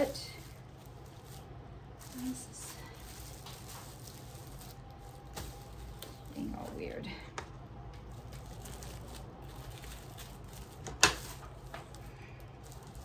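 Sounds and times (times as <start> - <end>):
low steady hum: 0.0 - 13.0
plastic bags crinkling: 0.0 - 13.0.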